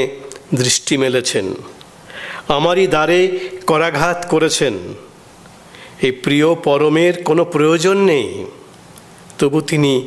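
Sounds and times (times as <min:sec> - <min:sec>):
man reading aloud: 0:00.0 - 0:01.8, 0:02.4 - 0:05.1, 0:06.0 - 0:08.7, 0:09.4 - 0:10.0.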